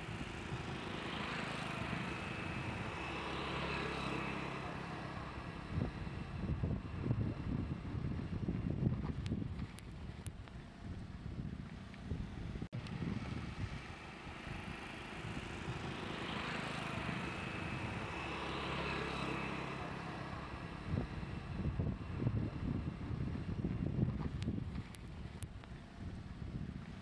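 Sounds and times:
wind buffeting microphone: 0:05.2 - 0:18.4, 0:19.5 - 0:27.0
vehicle passing: 0:14.2 - 0:23.0.

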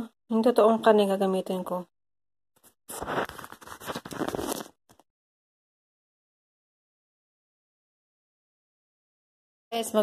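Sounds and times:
crackly rustling and crinkling: 0:02.6 - 0:05.0.

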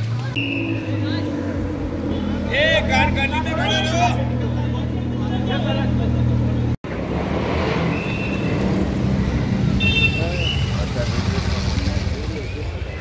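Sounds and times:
vehicle engines rumbling: 0:00.0 - 0:13.0.

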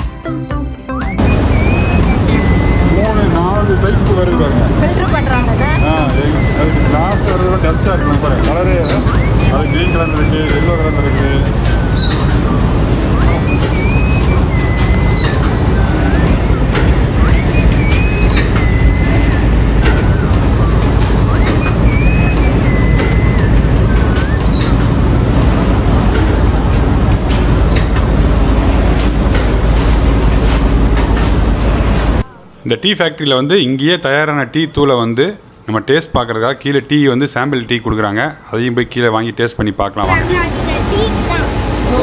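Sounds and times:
high whistling glides: 0:00.9 - 0:32.3
machinery rumbling: 0:01.1 - 0:32.6, 0:40.0 - 0:42.0.

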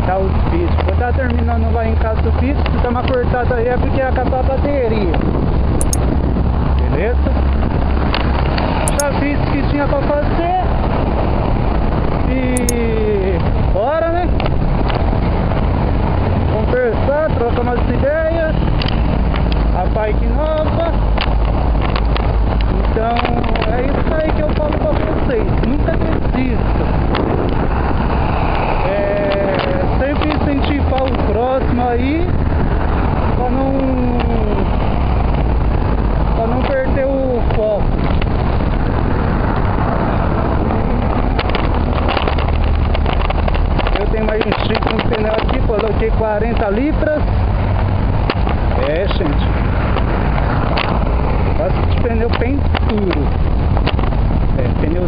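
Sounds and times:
wind rumbling on microphone: 0:00.0 - 0:55.0
bicycle rattling on rough pavement: 0:41.3 - 0:55.0.

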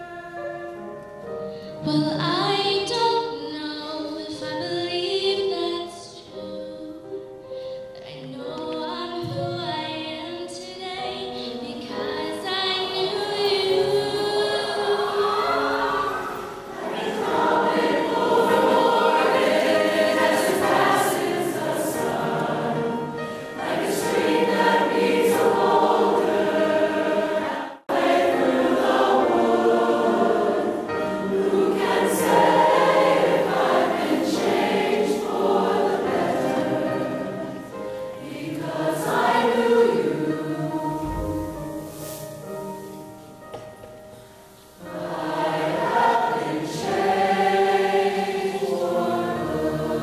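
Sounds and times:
mixed choir singing: 0:11.9 - 0:42.0, 0:44.8 - 0:50.0.

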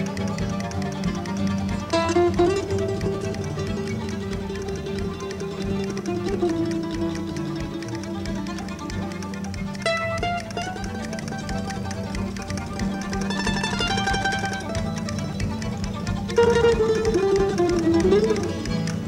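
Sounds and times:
fiddle: 0:00.0 - 0:19.0
mandolin: 0:00.0 - 0:19.0
upright bass: 0:00.0 - 0:19.0.

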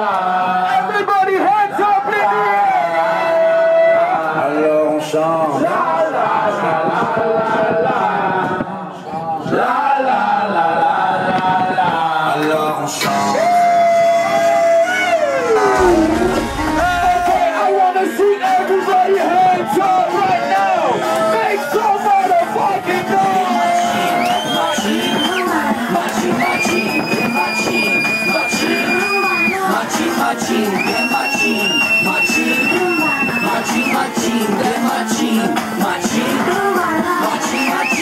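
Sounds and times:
crowd chatter and shouting: 0:00.0 - 0:38.0
dance music over sound system: 0:15.8 - 0:38.0.

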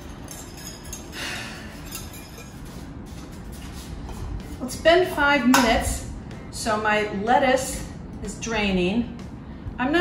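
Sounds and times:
utensil clinking and scraping saucepan: 0:00.0 - 0:02.8.

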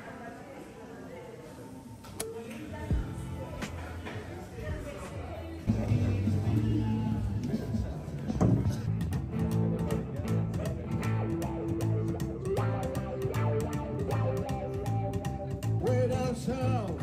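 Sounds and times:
plucked double bass: 0:08.4 - 0:16.8
electric guitar: 0:08.9 - 0:17.0.

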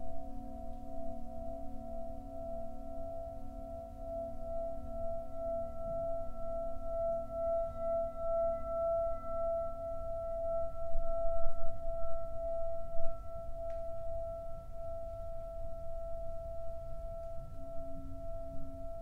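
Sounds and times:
singing bowl ringing: 0:00.0 - 0:19.0.

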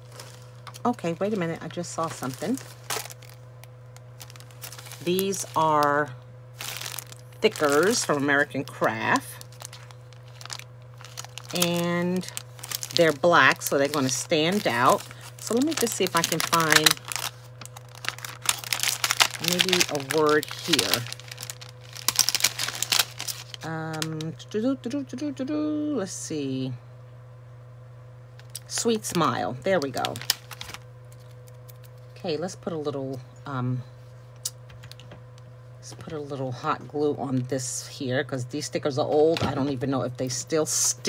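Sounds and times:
plastic rustling: 0:00.0 - 0:24.2, 0:28.4 - 0:32.1
plastic packaging crinkling: 0:00.0 - 0:24.3, 0:28.4 - 0:32.1
steady low hum: 0:00.0 - 0:41.0.

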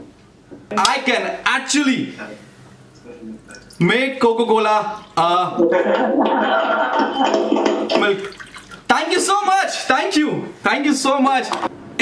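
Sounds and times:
liquid pouring into a glass: 0:03.5 - 0:03.8, 0:08.1 - 0:08.9.

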